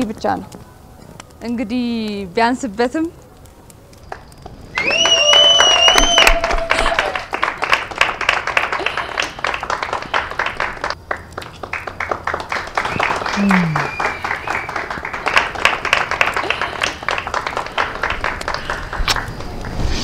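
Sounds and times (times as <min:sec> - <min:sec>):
voices: 0:00.0 - 0:05.9, 0:12.8 - 0:15.1
people clapping and cheering: 0:04.0 - 0:19.8
high whistle: 0:04.7 - 0:07.1, 0:12.9 - 0:14.9.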